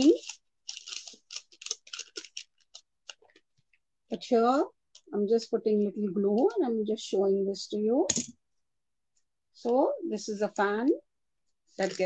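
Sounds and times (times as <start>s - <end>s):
paper rustling and crinkling: 0.0s - 3.5s, 11.7s - 12.0s.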